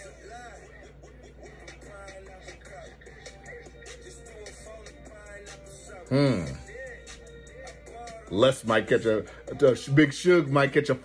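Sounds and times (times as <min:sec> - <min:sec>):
rapping over a bass line: 0:00.0 - 0:11.0.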